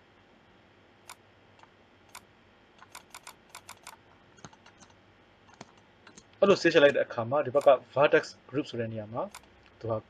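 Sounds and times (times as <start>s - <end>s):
computer keyboard clicks: 2.8s - 6.4s.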